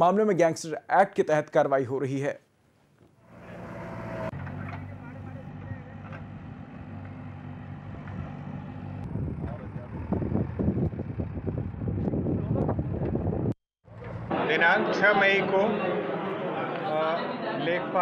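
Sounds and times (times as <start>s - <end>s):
diesel engine running: 3.2s - 12.2s.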